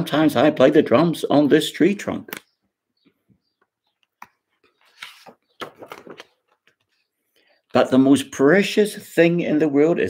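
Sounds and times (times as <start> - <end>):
paper pages turning: 4.6 - 7.0
book being handled: 4.6 - 7.1.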